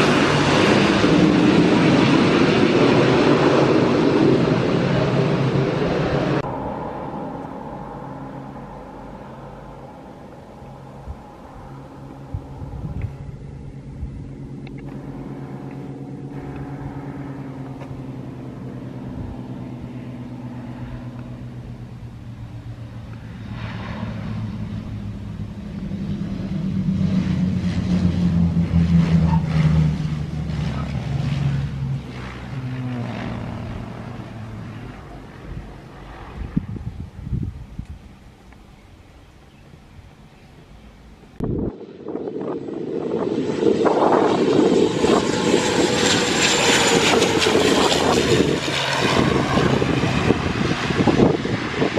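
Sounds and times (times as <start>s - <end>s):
twin piston engines droning: 0.0s - 51.9s.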